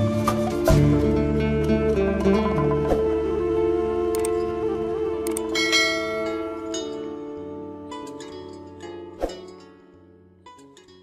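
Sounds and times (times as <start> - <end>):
plucked-string background music: 0.0 - 11.0.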